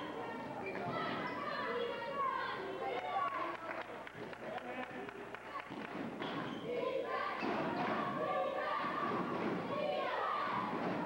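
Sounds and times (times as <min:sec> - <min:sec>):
indistinct shouting in a gym: 0:06.6 - 0:11.0.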